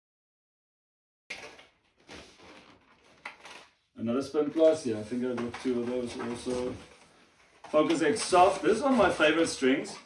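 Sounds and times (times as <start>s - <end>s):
faint rustling and rubbing: 1.8s - 10.0s.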